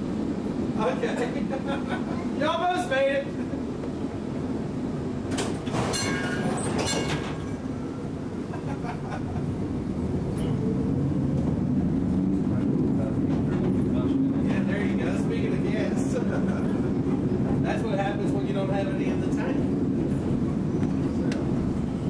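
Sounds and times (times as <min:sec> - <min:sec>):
streetcar rumbling on rails: 0:00.0 - 0:22.0.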